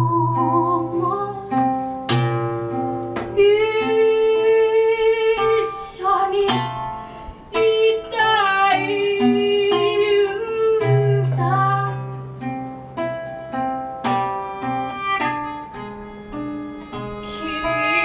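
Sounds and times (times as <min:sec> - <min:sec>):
woman singing: 0:00.0 - 0:01.8, 0:03.3 - 0:12.2
strummed acoustic guitar: 0:00.0 - 0:04.4, 0:05.3 - 0:18.0
melodica long held notes: 0:14.4 - 0:18.0.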